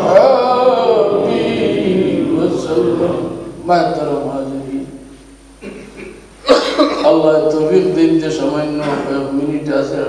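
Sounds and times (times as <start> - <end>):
man coughing: 5.7 - 7.2, 8.8 - 9.2.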